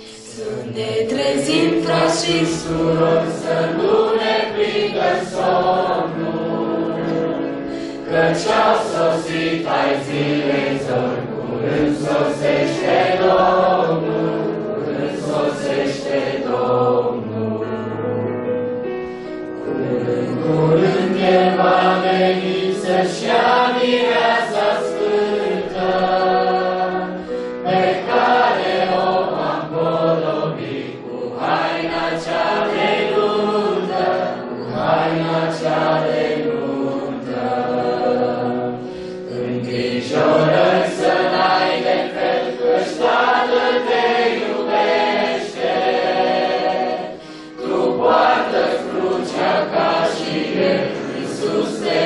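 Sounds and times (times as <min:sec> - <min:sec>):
group singing a hymn: 0:00.0 - 0:18.2, 0:19.2 - 0:52.0
keyboard: 0:00.0 - 0:52.0.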